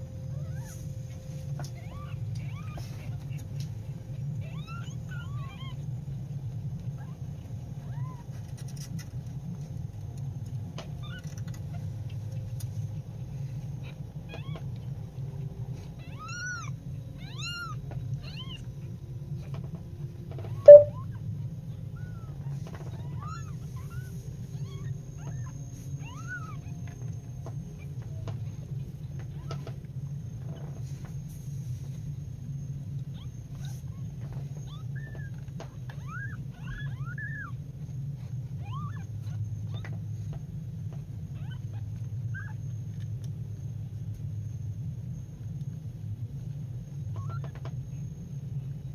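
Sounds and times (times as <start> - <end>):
low hum: 18.8 - 21.7
kittens mewing: 38.6 - 39.9.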